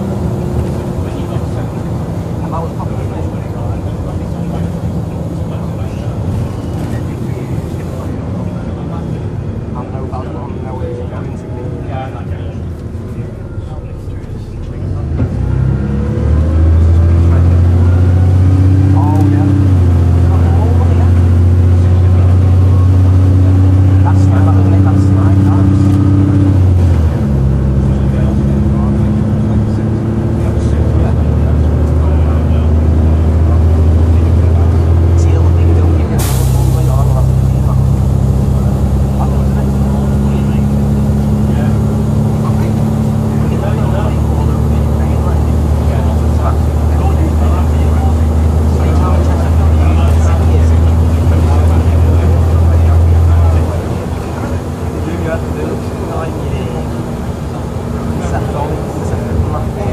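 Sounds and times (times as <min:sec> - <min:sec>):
bus diesel engine running: 0:00.0 - 0:59.9.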